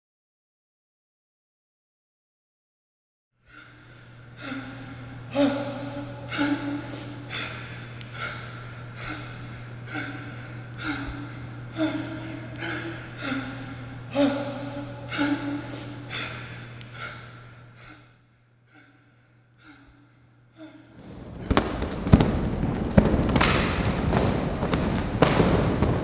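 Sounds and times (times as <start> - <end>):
steady low hum: 3.4 - 26.0
man gasping and sighing: 3.5 - 18.1.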